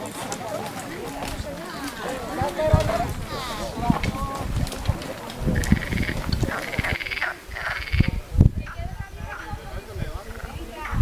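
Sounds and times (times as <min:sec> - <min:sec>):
frogs calling in buzzing trills: 0:05.6 - 0:08.2.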